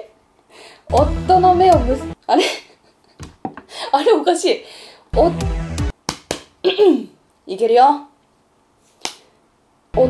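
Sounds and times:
sharp click with room echo: 9.0s - 9.3s.

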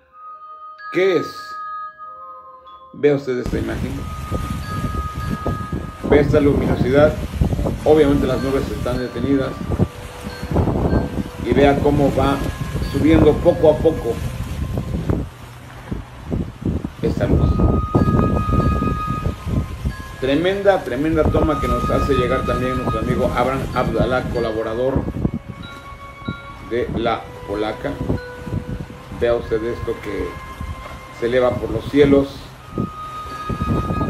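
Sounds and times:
thin steady high tone: 0.0s - 7.0s, 17.1s - 34.0s
wind buffeting microphone: 3.5s - 34.0s
thin high whine: 29.7s - 34.0s.

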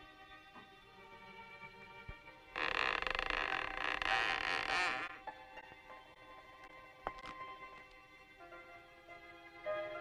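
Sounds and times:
faint background music: 0.0s - 10.0s
wooden door creaking open: 2.6s - 5.2s.

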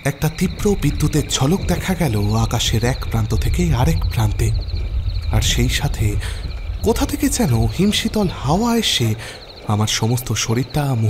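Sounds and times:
crickets chirping: 0.0s - 11.0s
voices: 0.0s - 11.0s.

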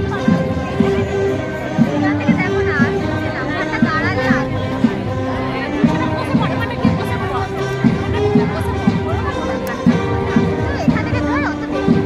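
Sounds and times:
crowd chatter: 0.0s - 12.0s
march music: 0.0s - 12.0s.

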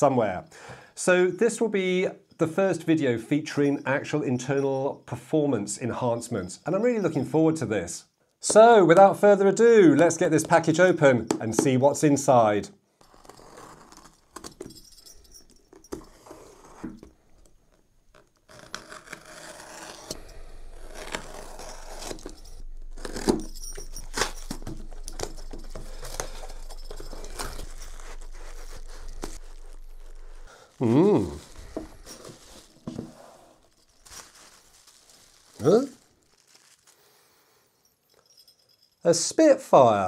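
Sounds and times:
packaging crinkling: 18.2s - 37.2s
tape tearing from cardboard box: 18.5s - 30.3s
sharp clicks and knocks: 22.0s - 30.4s.

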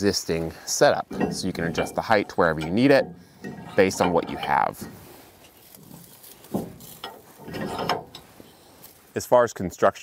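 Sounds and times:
metal-on-metal scrape: 0.9s - 8.9s.

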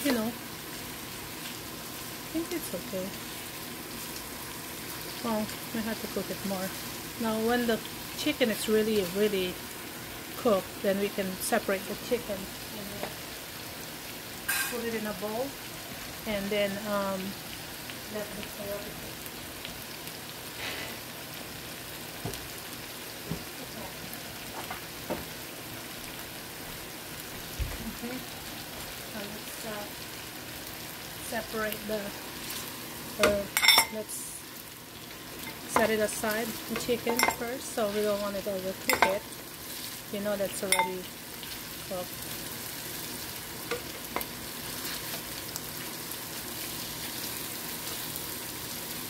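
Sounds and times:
food sizzling in a pan: 0.0s - 49.0s.

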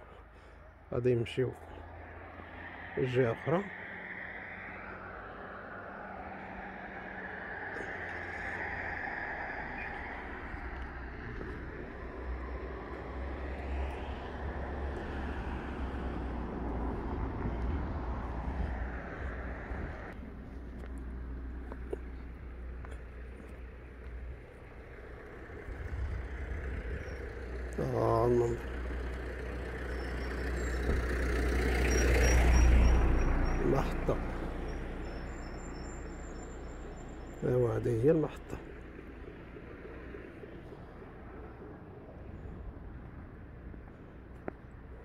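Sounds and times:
road noise: 0.0s - 45.0s
vehicle engine rumble: 0.0s - 45.0s
cars driving past: 0.1s - 45.0s.

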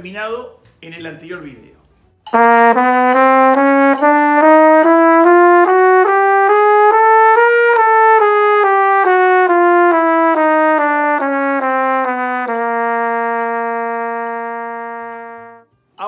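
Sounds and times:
flugelhorn playing descending scale: 2.3s - 15.7s.

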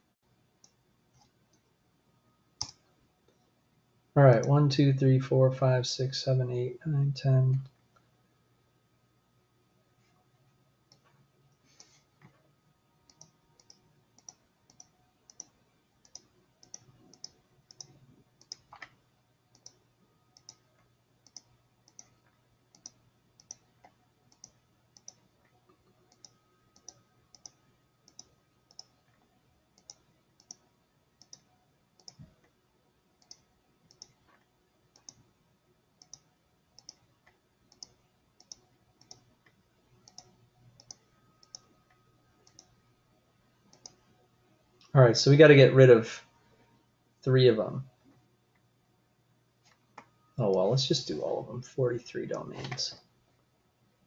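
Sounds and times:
low steady hum: 0.0s - 54.0s
computer mouse clicking: 0.6s - 1.7s, 2.6s - 3.5s, 10.9s - 12.4s, 13.1s - 32.6s, 33.2s - 35.3s, 36.0s - 42.8s, 43.7s - 44.1s.

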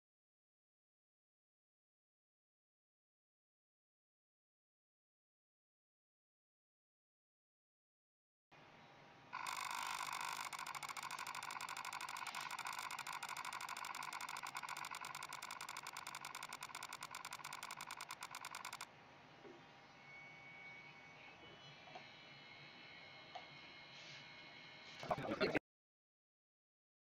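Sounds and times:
scanner buzz of rapid clicks: 9.4s - 18.9s.

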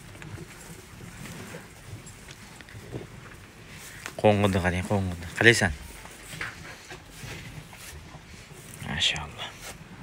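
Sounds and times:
cattle eating from feed trough: 0.0s - 10.0s.

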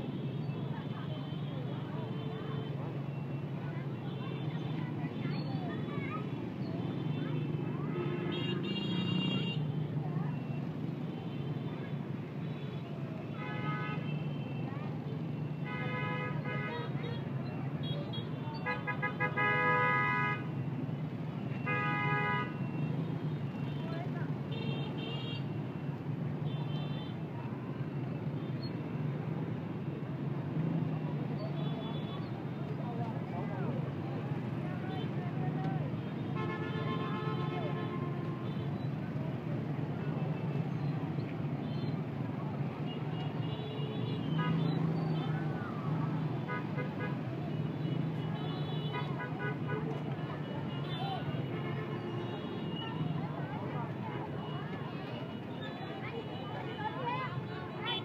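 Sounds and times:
horns tooting: 15.6s - 29.0s, 33.9s - 58.0s.

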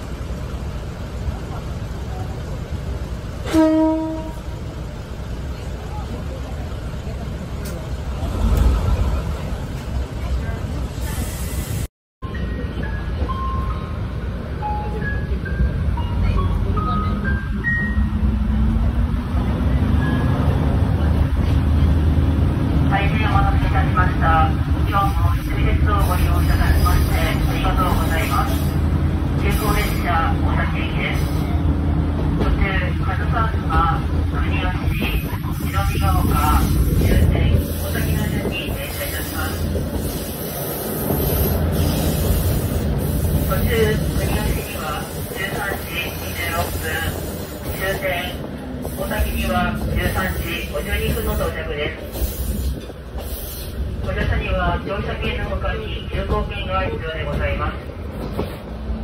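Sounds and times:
diesel railcar engine drone: 0.0s - 59.0s.

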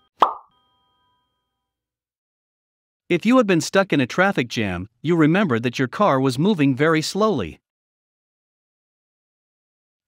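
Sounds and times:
plop pop sound effect: 0.2s - 0.5s.

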